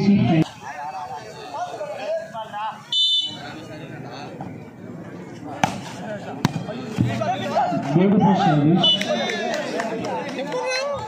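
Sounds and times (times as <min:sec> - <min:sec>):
crowd voices: 0:00.0 - 0:11.0
referee whistle blast: 0:02.9 - 0:03.4
volleyball hits: 0:05.5 - 0:07.1.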